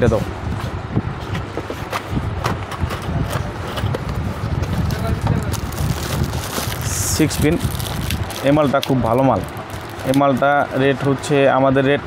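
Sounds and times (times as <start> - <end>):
cardboard box rustling: 4.8 - 6.9.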